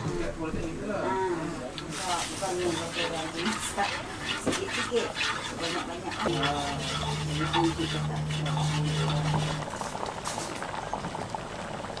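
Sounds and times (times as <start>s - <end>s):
metal spatula stirring: 1.8s - 9.8s
fat sizzling in a wok: 1.8s - 12.0s
voices talking: 4.6s - 9.6s.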